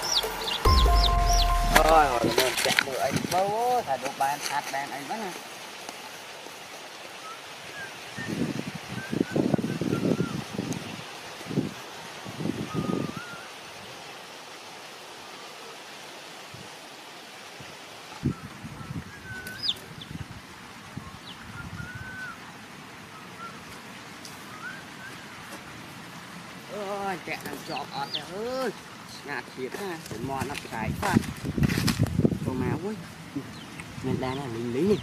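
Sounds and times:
small birds chirping: 0:00.0 - 0:02.4, 0:18.3 - 0:20.3, 0:23.2 - 0:30.8, 0:32.6 - 0:35.0.

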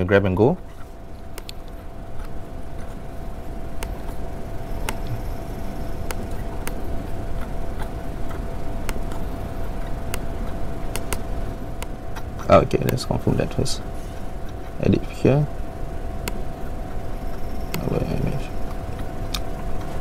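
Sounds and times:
faint constant tone: 0:00.0 - 0:20.0
low room hum: 0:00.0 - 0:20.0
laptop clicks: 0:04.8 - 0:05.2, 0:10.9 - 0:11.2.

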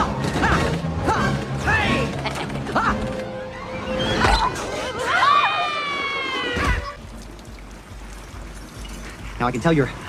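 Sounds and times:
film soundtrack music: 0:00.0 - 0:10.0.

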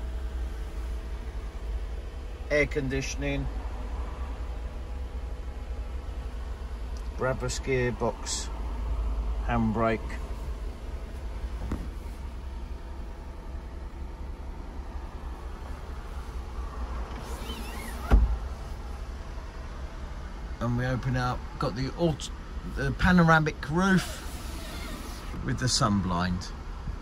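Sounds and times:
car engine idling: 0:00.0 - 0:27.0
sharp thump: 0:11.6 - 0:12.0, 0:18.0 - 0:18.4.

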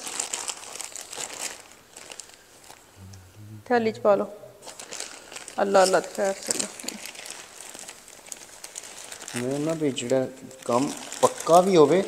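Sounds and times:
plastic bag crinkling: 0:00.0 - 0:03.0, 0:04.6 - 0:12.0
person speaking: 0:03.0 - 0:04.6, 0:09.4 - 0:12.0.

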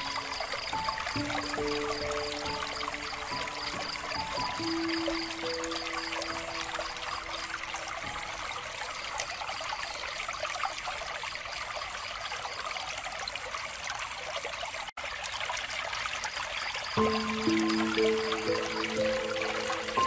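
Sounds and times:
soft background music: 0:00.0 - 0:09.3, 0:17.0 - 0:20.0
water trickling from fountain: 0:00.0 - 0:20.0.

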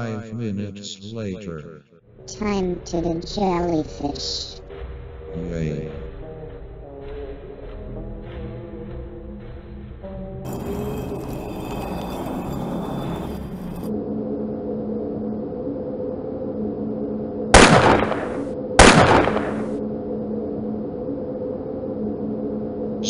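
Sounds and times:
ominous background music: 0:02.0 - 0:23.0
loud gunshots: 0:17.6 - 0:19.8.

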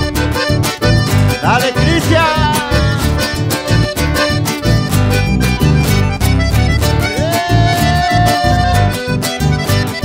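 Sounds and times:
accordion: 0:00.0 - 0:10.0
strummed guitars: 0:00.0 - 0:10.0
steady bass beat: 0:00.8 - 0:09.9.

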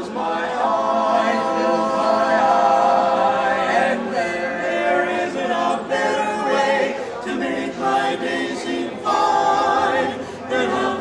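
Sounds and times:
male quartet singing in harmony: 0:00.0 - 0:11.0.

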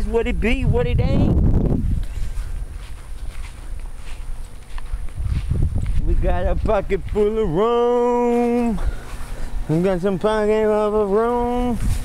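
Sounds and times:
wind rumble on microphone: 0:00.0 - 0:07.6, 0:11.5 - 0:12.0
footsteps on grass: 0:01.3 - 0:12.0.

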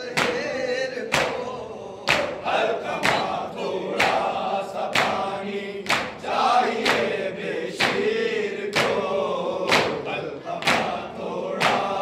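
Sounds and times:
men chanting in chorus: 0:00.0 - 0:12.0.

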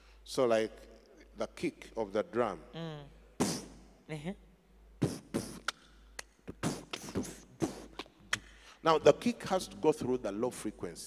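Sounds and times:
man beatboxing: 0:03.4 - 0:03.8, 0:05.0 - 0:08.5.

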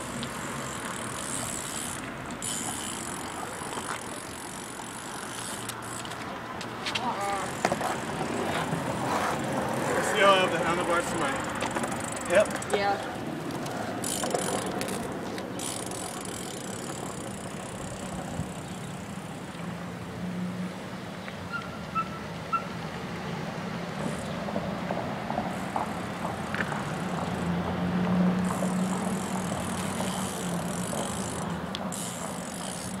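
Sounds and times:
bikes rolling on pavement: 0:00.0 - 0:33.0.

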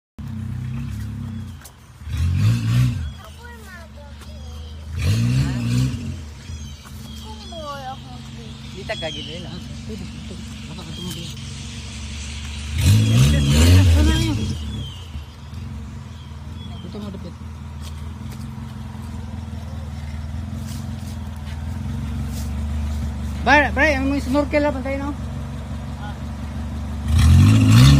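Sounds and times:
off-road vehicle engine revving: 0:00.2 - 0:27.9.

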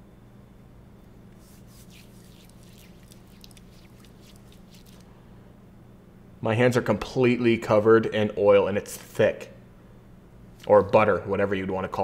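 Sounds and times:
palms rubbing together wetly: 0:01.3 - 0:05.1.

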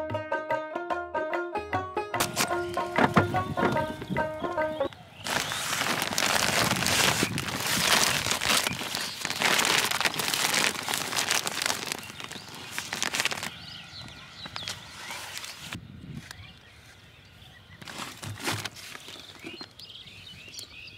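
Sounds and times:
vegetables shifting in sack: 0:02.2 - 0:04.6, 0:05.2 - 0:13.6, 0:17.8 - 0:19.6
plastic sack rustling: 0:02.2 - 0:15.8, 0:17.8 - 0:19.7.

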